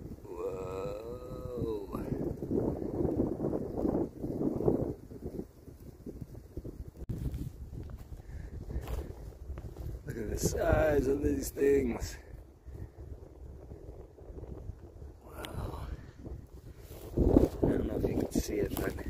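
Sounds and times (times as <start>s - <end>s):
man's wavering exclamation: 0.2s - 2.4s.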